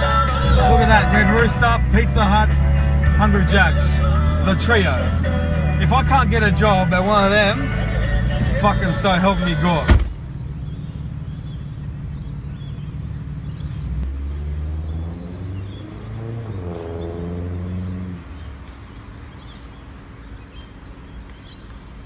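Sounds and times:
vehicle engine rumbling: 0.0 - 22.0
faint bird chirps: 10.5 - 14.0.

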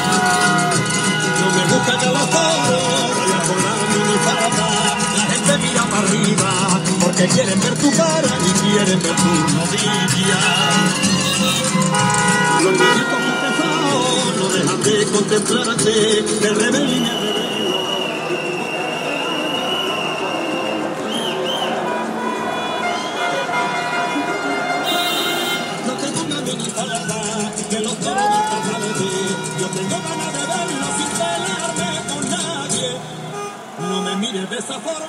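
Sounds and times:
people shouting: 0.0 - 5.6, 27.9 - 29.2
car horns honking: 0.0 - 20.0, 21.1 - 35.0
music playing: 0.0 - 35.0.

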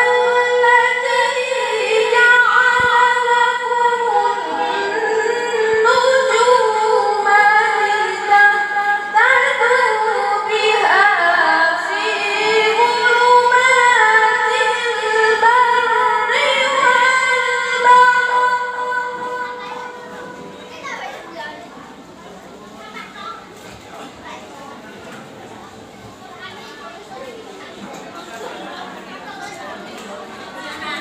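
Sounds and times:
woman reciting melodically: 0.0 - 21.8.

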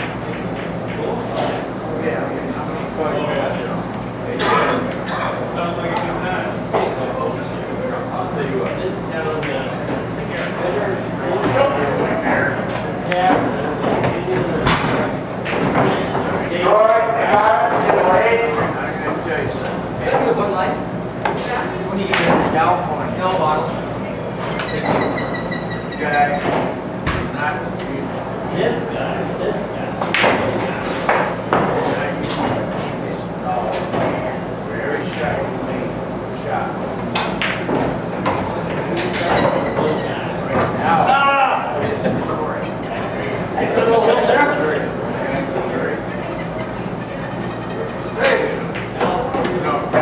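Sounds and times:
bar crowd chatter: 0.0 - 50.0
pool balls clacking: 22.0 - 23.5, 24.4 - 27.9, 37.1 - 40.8, 45.2 - 50.0.

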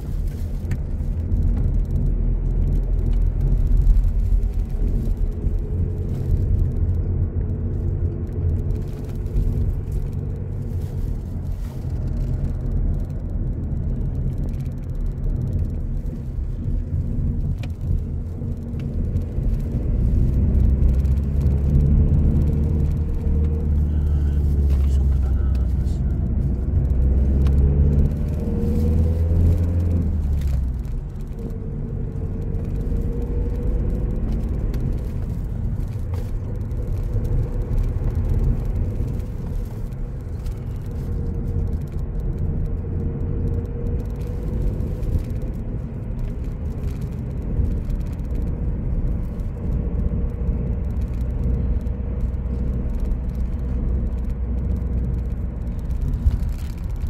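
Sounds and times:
car engine drone: 0.0 - 57.0
road noise rumble: 0.0 - 57.0.

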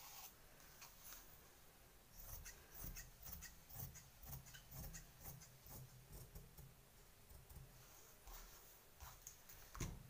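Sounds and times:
cloth rubbing: 7.8 - 9.8.

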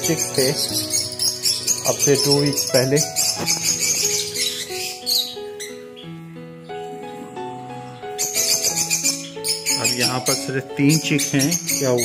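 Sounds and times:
background music with jingling rhythm: 0.0 - 12.0
small birds chirping: 0.0 - 12.0.

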